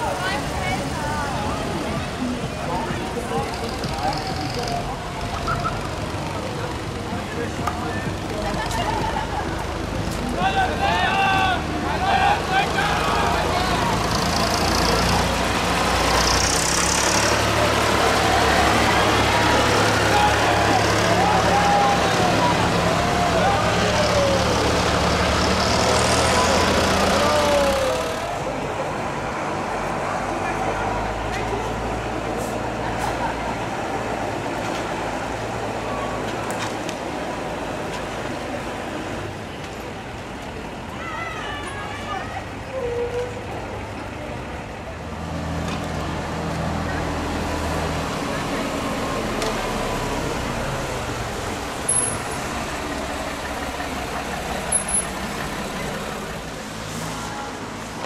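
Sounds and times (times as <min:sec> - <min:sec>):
van engine driving off: 0:00.0 - 0:40.8, 0:43.7 - 0:58.0
people calling out: 0:10.2 - 0:15.1, 0:16.8 - 0:25.1, 0:26.2 - 0:28.7
low engine hum: 0:43.1 - 0:58.0.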